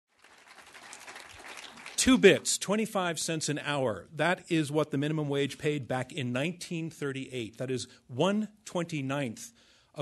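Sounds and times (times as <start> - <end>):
audience applauding: 0.1 - 2.4.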